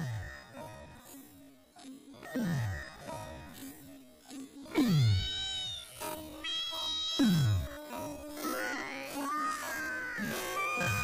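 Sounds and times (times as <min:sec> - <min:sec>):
high wavering meow-like tone: 0:04.8 - 0:07.7, 0:08.6 - 0:11.0.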